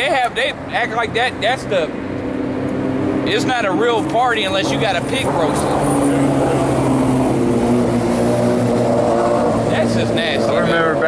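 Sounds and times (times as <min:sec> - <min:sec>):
low engine drone: 0:00.5 - 0:11.0.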